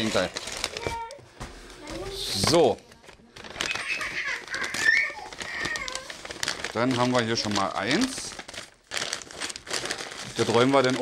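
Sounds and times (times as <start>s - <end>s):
paper bag rustling and crinkling: 0.0s - 11.0s.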